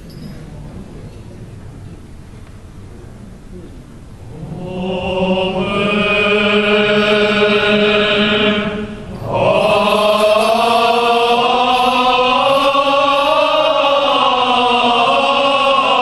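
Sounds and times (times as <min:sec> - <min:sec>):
men's choir chanting: 0:04.2 - 0:16.0.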